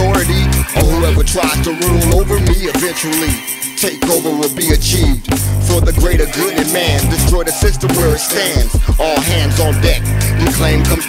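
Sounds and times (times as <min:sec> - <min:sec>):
deep bass line: 0:00.0 - 0:03.4, 0:04.6 - 0:11.0
rapping over a beat: 0:00.0 - 0:11.0.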